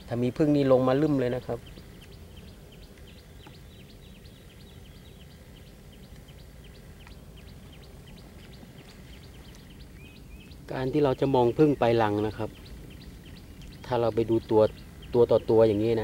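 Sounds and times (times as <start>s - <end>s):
low steady background rumble: 0.0s - 16.0s
small birds chirping: 0.0s - 16.0s.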